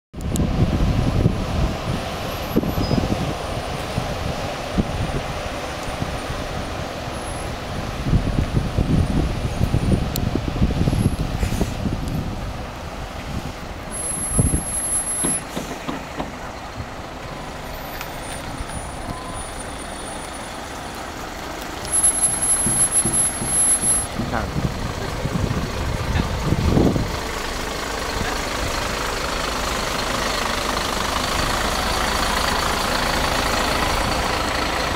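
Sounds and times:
diesel coaches driving past: 0.2s - 34.9s.

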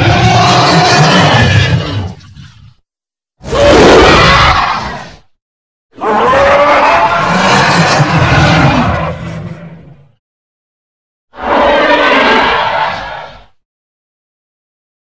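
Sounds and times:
cartoon monster roaring: 0.0s - 2.2s, 3.4s - 5.3s, 6.0s - 9.9s, 11.3s - 13.5s.

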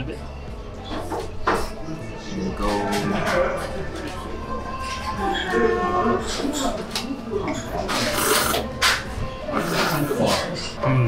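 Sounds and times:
person slurping noodles: 7.9s - 8.7s, 9.5s - 10.6s.

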